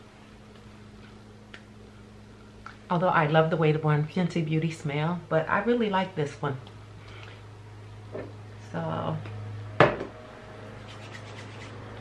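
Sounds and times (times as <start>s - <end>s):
fingertips rubbing skin: 10.8s - 11.8s.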